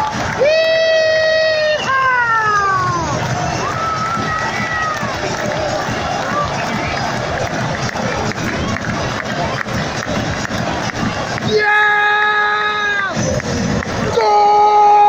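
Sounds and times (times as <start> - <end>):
stadium crowd cheering: 0.0 - 15.0.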